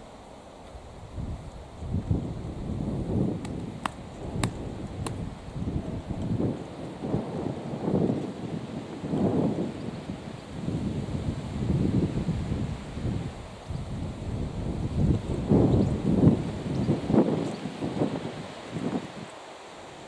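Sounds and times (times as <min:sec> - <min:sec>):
wind buffeting microphone: 0:00.7 - 0:20.0.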